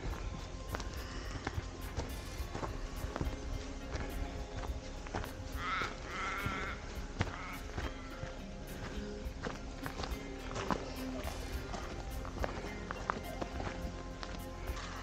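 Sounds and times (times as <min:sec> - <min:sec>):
background music: 0:00.0 - 0:15.0
footsteps on dirt track: 0:00.0 - 0:15.0.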